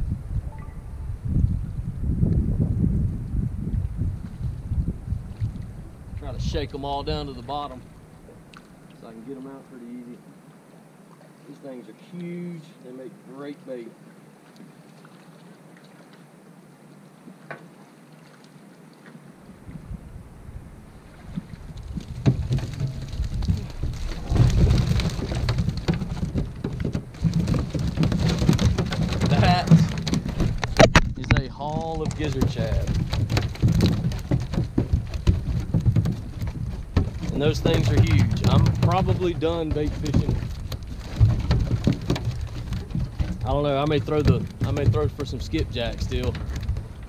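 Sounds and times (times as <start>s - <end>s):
fish flapping: 21.0s - 47.0s.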